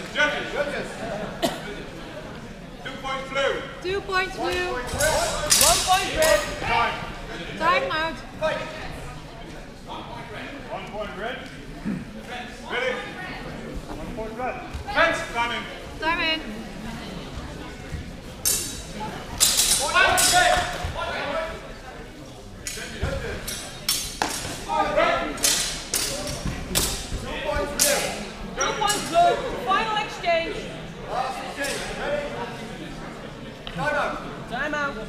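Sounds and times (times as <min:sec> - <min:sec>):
steel swords clashing: 0:19.4 - 0:20.6.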